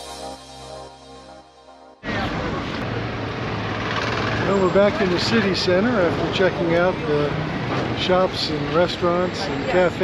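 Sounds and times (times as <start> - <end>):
faint voices of passers-by: 2.0 - 10.0
traffic engine hum: 2.0 - 10.0.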